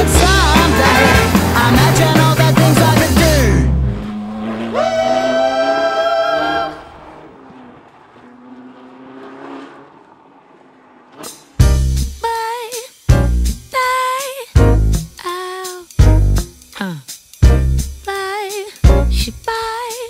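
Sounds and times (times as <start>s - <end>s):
music: 0.0s - 3.9s, 11.6s - 20.0s
sports car engine at high revs: 6.8s - 11.8s.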